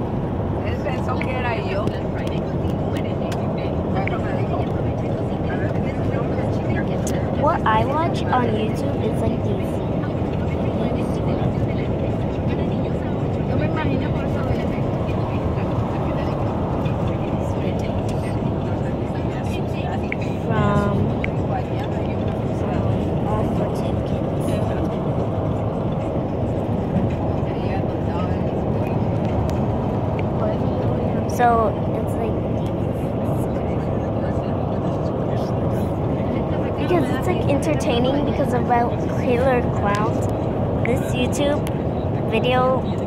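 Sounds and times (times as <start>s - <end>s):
car road and engine noise: 0.0s - 43.0s.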